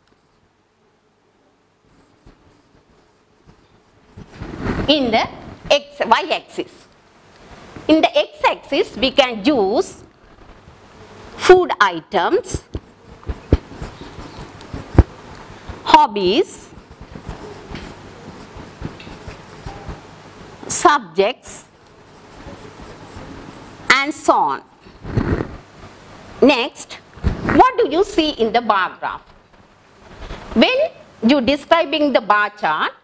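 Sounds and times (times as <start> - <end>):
stylus tapping and scratching on glass: 12.5 - 15.2, 16.6 - 20.0, 22.1 - 23.8.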